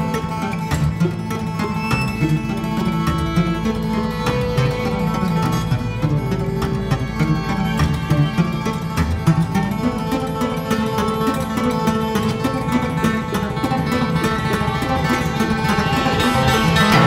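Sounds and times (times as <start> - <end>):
low sustained tones: 0.0 - 17.0
plucked guitar notes: 0.0 - 17.0.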